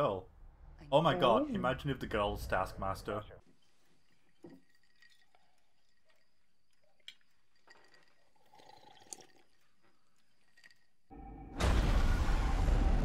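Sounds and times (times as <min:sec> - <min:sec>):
person drinking: 0:03.4 - 0:11.1.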